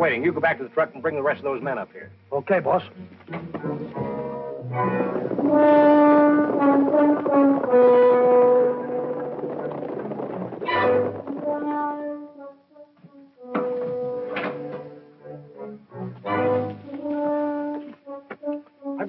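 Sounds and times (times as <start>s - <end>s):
orchestral brass and horns: 3.6s - 19.0s.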